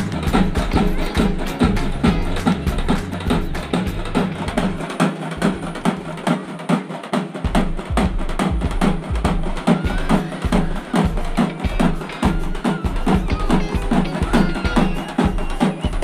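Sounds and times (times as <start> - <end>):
heavy bass: 0.0 - 4.7
fast steady drumming: 0.0 - 16.0.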